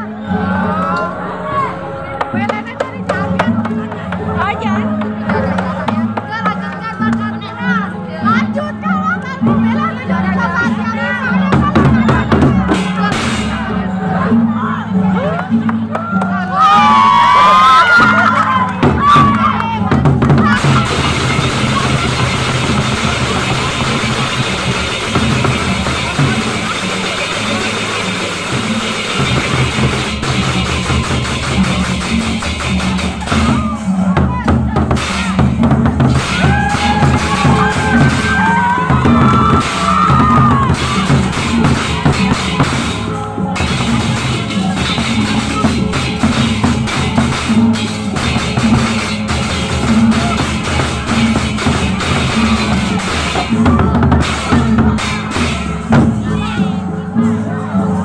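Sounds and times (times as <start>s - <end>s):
wavering high tone: 0.0s - 3.0s
barrel drums in fast rhythm: 2.2s - 7.5s, 9.4s - 13.8s, 15.6s - 56.7s
cymbals clashing: 12.7s - 13.8s, 20.4s - 57.4s.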